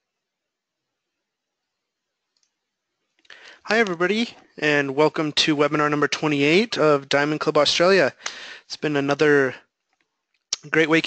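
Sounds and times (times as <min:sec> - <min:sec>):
faint recording hiss: 0:00.0 - 0:11.0.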